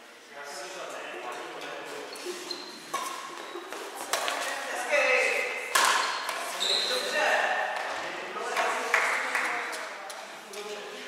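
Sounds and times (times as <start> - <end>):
players' voices: 0.3 - 11.0
shoes squeaking on wooden floor: 1.8 - 4.6, 6.0 - 7.2.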